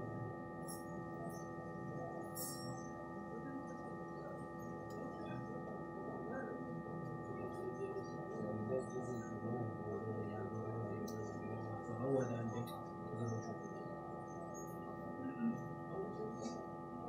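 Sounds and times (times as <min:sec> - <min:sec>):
steady whine of held tones: 0:00.0 - 0:17.0.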